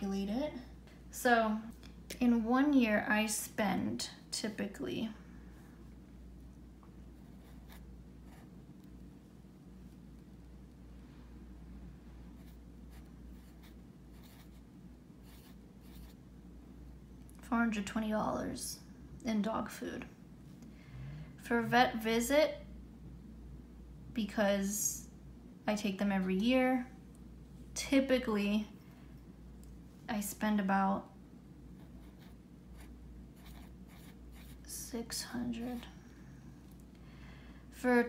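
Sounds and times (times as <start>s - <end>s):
felt-tip pen scratching on paper: 12.4s - 14.6s, 31.8s - 34.7s.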